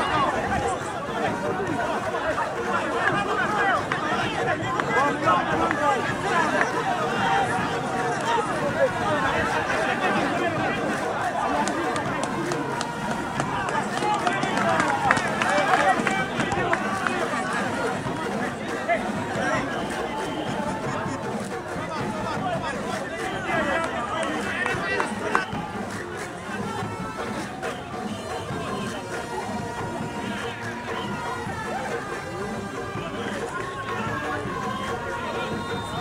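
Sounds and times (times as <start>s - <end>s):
many voices talking and calling out: 0.0s - 36.0s.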